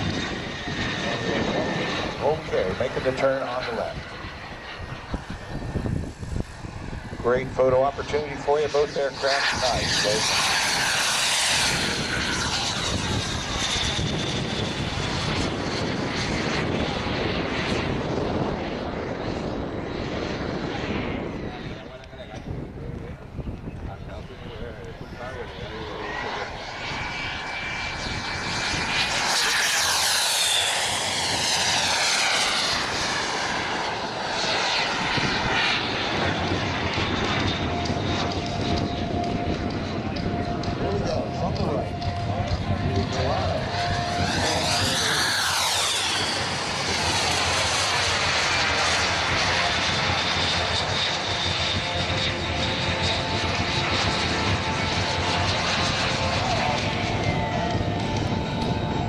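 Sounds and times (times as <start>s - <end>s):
model jet turbine whine: 0.0s - 59.0s.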